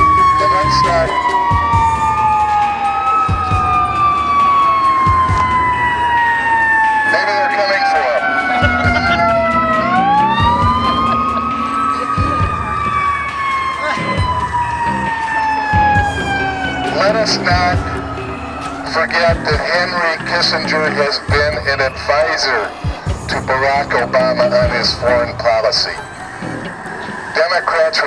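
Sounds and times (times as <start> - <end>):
fire truck siren wailing: 0.0 - 28.0.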